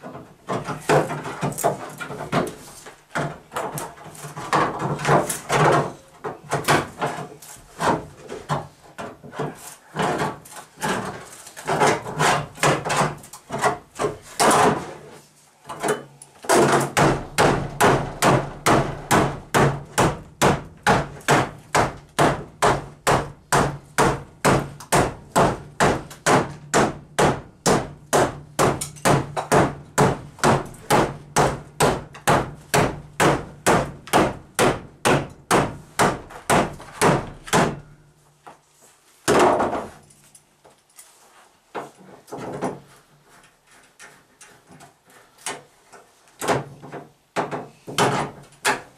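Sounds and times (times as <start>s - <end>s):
hammer blows on sheet metal: 16.6s - 38.0s.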